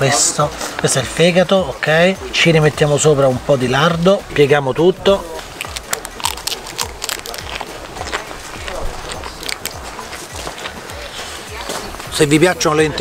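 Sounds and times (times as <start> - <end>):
crisp flatbread crunching: 5.4 - 10.8.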